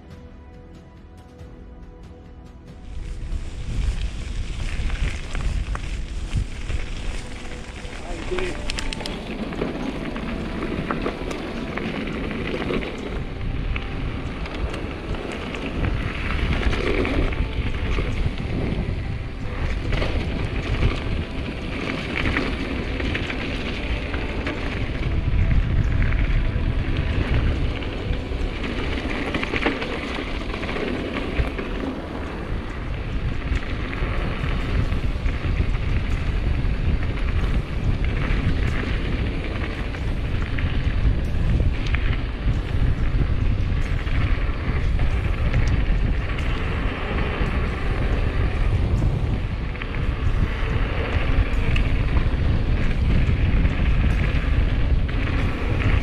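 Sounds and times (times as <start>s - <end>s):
bike rattling: 2.8s - 56.0s
tyres crunching over gravel: 2.8s - 56.0s
wind buffeting microphone: 2.8s - 56.0s.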